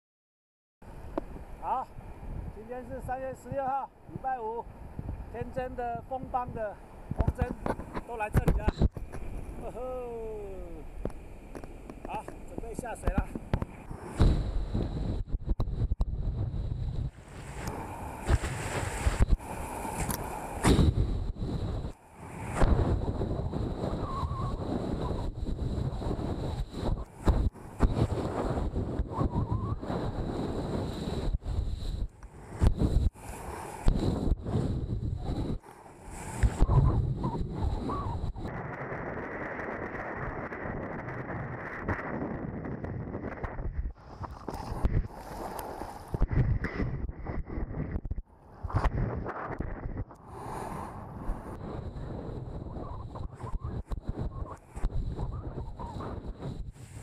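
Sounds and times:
wind buffeting microphone: 1.1s - 57.0s.

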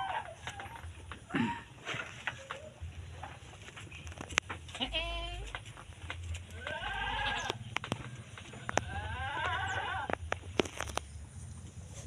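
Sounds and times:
goats bleating: 0.0s - 1.7s, 4.7s - 5.6s, 6.4s - 7.7s, 8.5s - 10.2s.

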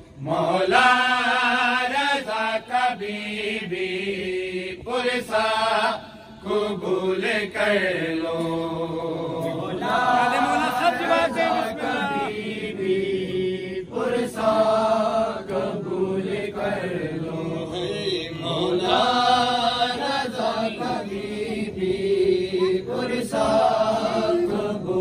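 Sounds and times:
men chanting a lament: 0.2s - 25.0s.

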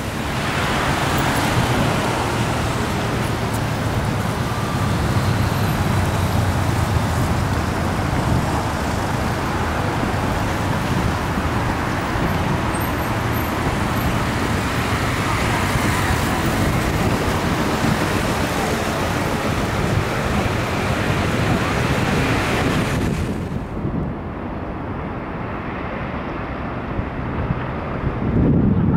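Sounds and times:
road traffic rumble: 0.0s - 28.9s.

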